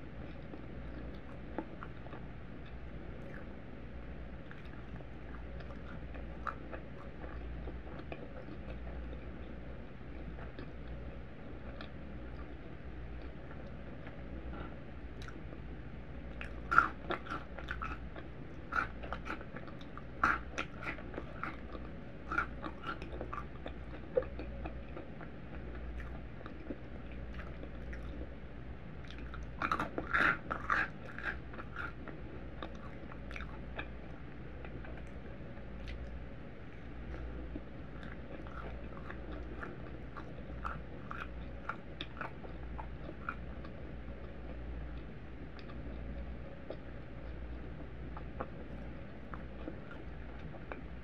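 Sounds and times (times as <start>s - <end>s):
cereal crunching while chewed: 0.2s - 9.3s, 16.2s - 28.4s, 29.0s - 44.6s.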